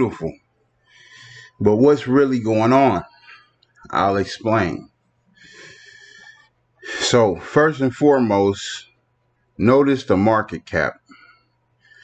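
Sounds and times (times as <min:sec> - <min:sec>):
man inhaling: 0:00.8 - 0:01.6, 0:05.4 - 0:06.5, 0:11.1 - 0:12.0.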